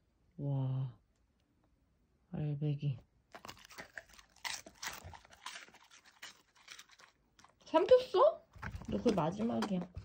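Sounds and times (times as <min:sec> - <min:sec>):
dog crunching dried fish: 0:03.3 - 0:10.0.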